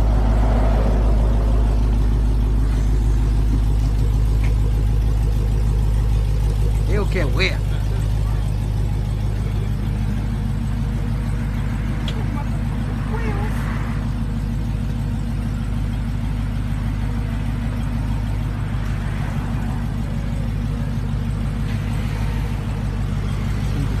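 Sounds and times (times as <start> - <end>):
vehicle engine idling: 0.0 - 24.0
faint voices: 6.6 - 24.0.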